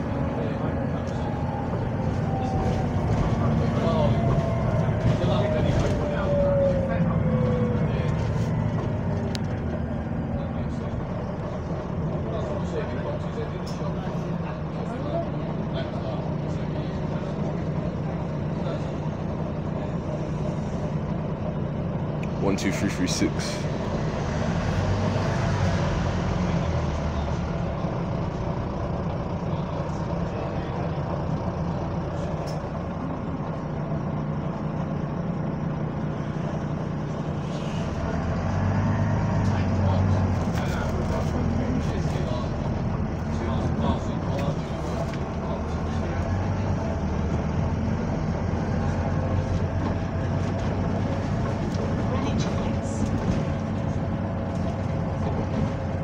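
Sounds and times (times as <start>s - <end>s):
bus engine hum: 0.0s - 56.0s
bus cabin rattle: 49.1s - 56.0s.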